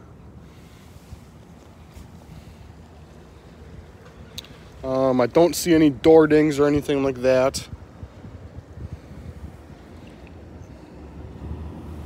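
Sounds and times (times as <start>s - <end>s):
wind buffeting microphone: 1.0s - 12.0s.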